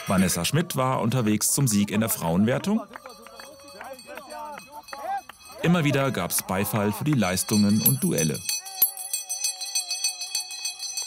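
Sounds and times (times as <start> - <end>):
cowbell shaken rapidly: 1.8 - 11.0.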